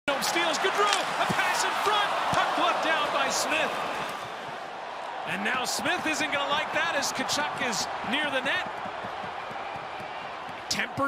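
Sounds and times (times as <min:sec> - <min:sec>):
crowd shouting: 0:00.0 - 0:11.0
hockey sticks puck and skates: 0:00.1 - 0:04.6.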